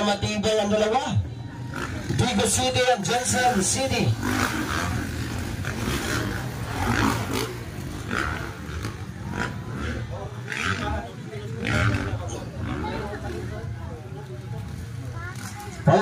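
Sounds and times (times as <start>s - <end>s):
dirt bike engines revving: 0.0s - 16.0s
voices: 0.0s - 16.0s.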